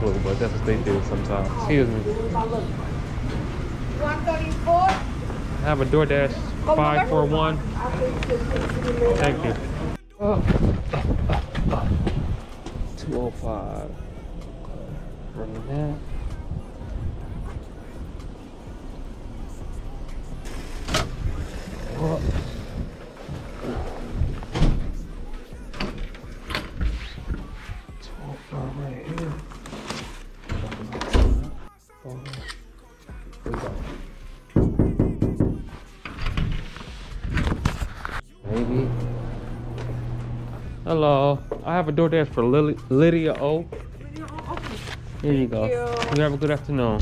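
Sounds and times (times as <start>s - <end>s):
background music: 0.0s - 47.0s
footsteps: 22.0s - 28.0s
glass door knocking: 34.6s - 35.7s.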